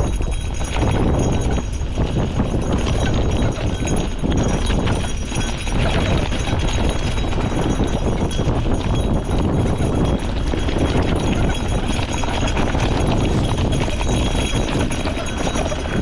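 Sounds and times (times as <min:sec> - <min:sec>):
bike rattling: 0:00.0 - 0:16.0
wind rumble on microphone: 0:00.0 - 0:16.0.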